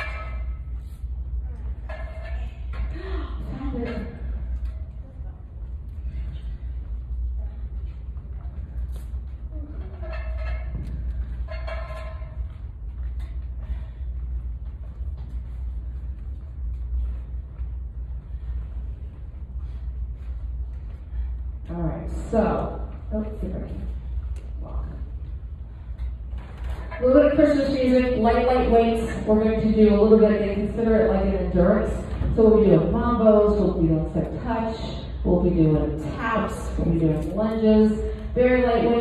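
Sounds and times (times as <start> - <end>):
low room rumble: 0.0 - 39.0.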